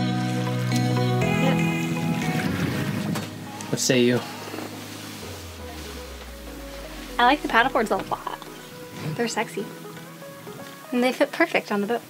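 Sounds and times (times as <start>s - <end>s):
background music with held tones: 0.0s - 12.0s
wind: 0.7s - 12.0s
water rushing past boat: 2.0s - 10.5s.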